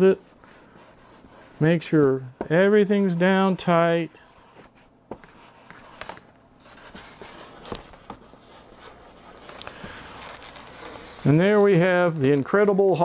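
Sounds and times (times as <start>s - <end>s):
hand rubbing plastic film: 8.8s - 13.0s.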